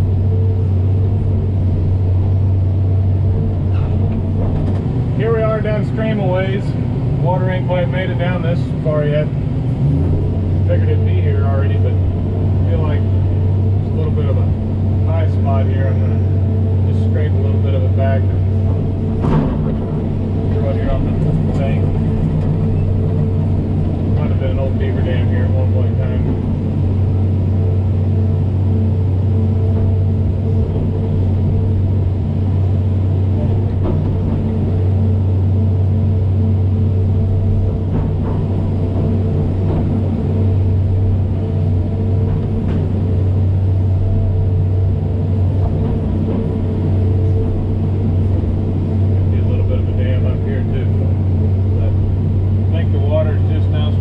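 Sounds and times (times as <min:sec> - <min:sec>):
excavator diesel engine running: 0:00.0 - 0:54.0
metal clanks and rattles: 0:00.3 - 0:08.7, 0:09.7 - 0:54.0.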